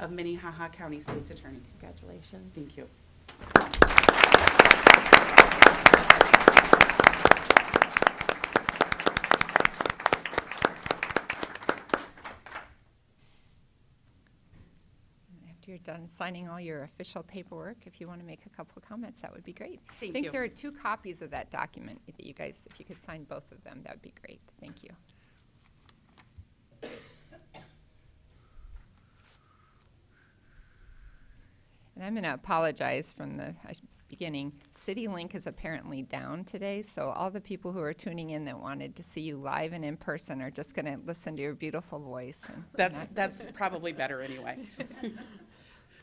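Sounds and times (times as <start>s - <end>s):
audience applause: 3.4s - 12.8s
person coughing: 26.8s - 27.8s.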